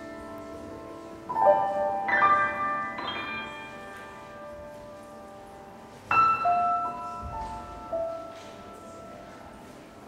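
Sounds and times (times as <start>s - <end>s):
high piano chord ringing: 0.0s - 9.4s.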